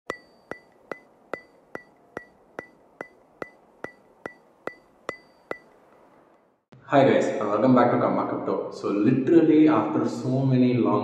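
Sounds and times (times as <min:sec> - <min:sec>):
sharp wood-block-like ticks: 0:00.1 - 0:06.4.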